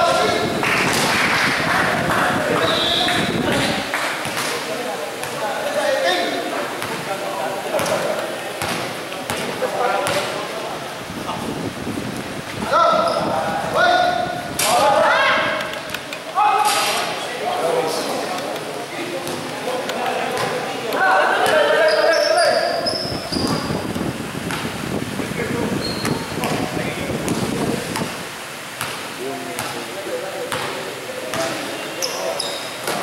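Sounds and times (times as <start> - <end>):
basketball bouncing: 8.6 - 10.3, 20.3 - 20.6, 24.4 - 24.7, 28.8 - 29.0, 30.5 - 30.7
players' voices and shouts: 12.6 - 23.1.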